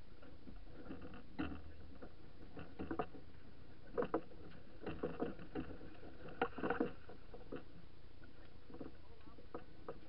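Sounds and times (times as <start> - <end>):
knocks and clicks on sailing yacht: 0.0 - 10.0.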